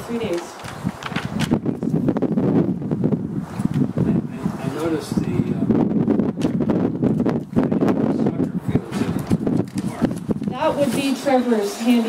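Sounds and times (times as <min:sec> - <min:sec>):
indistinct talk: 0:09.8 - 0:12.0.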